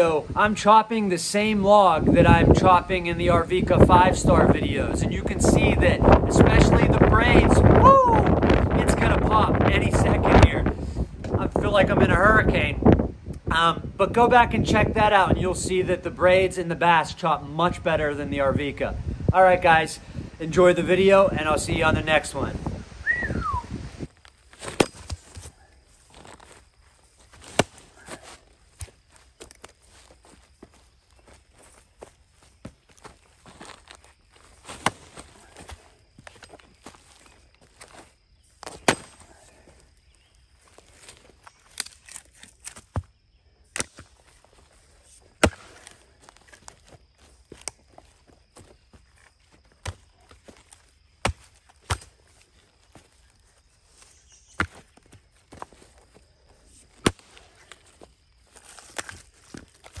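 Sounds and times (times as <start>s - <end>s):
axe chopping firewood: 24.6s - 25.5s, 27.4s - 28.2s, 34.7s - 35.7s, 38.6s - 39.2s, 45.4s - 46.0s, 51.2s - 52.1s, 57.0s - 57.4s.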